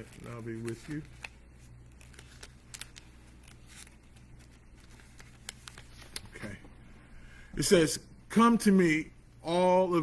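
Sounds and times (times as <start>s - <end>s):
thin pages turning: 0.0s - 6.6s
low steady hum: 0.0s - 10.0s.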